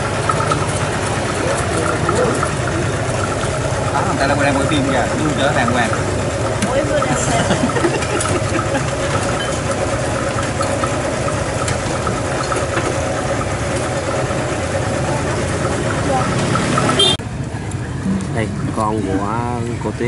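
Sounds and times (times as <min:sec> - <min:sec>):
people chattering: 0:00.0 - 0:10.4, 0:13.9 - 0:20.0
motorbike engine idling: 0:00.0 - 0:20.0.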